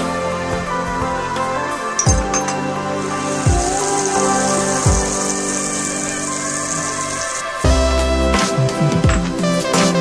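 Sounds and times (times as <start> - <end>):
slow beat background music: 0.0 - 10.0
caramel sizzling in a pan: 2.9 - 7.7.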